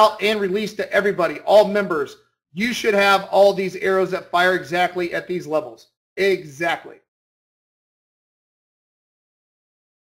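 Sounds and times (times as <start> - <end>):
speech: 0.0 - 7.1.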